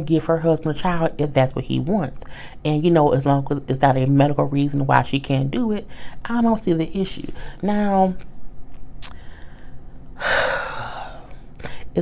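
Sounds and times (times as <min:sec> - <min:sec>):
mouth clicks: 0:09.0 - 0:09.2
sharp breath: 0:09.1 - 0:11.9.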